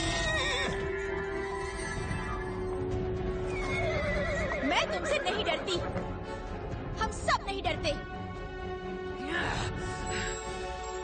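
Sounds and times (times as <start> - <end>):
cartoon unicorn whinnying: 0.0 - 0.8
background music with held notes: 0.0 - 11.0.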